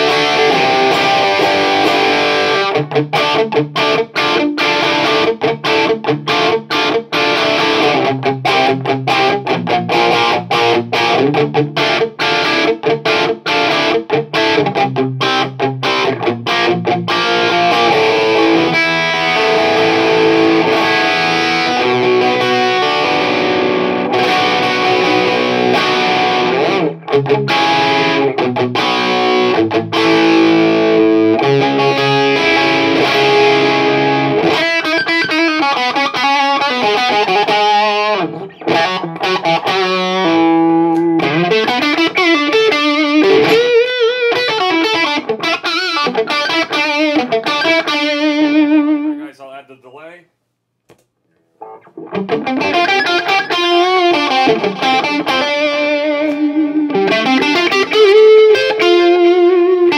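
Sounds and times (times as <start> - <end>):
overdriven electric guitar: 0.0 - 49.3, 50.9 - 59.9.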